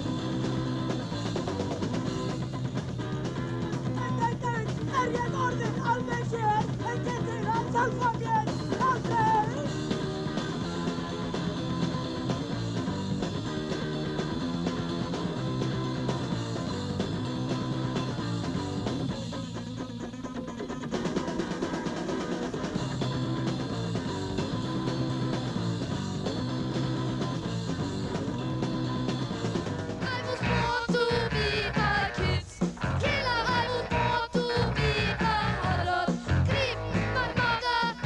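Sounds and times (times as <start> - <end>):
drums: 0.0 - 38.0
electric guitar: 0.0 - 38.0.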